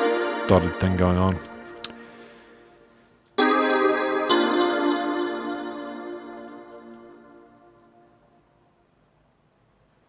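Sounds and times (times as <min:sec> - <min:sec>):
electronic keyboard chord: 0:00.0 - 0:08.6.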